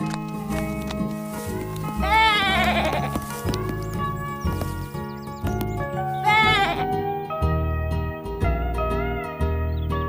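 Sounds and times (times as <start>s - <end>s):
cartoon lamb bleat: 2.0s - 3.2s, 6.1s - 7.0s.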